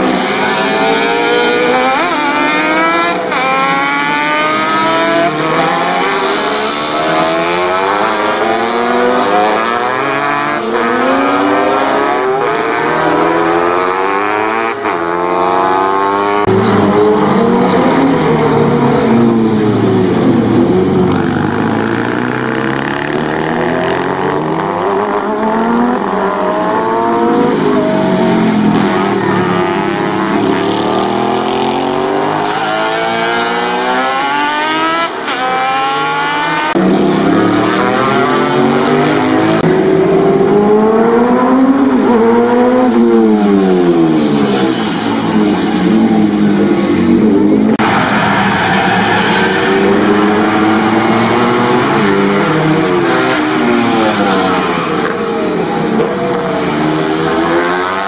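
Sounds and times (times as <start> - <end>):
racing motorcycle engines revving: 0.0 - 58.0.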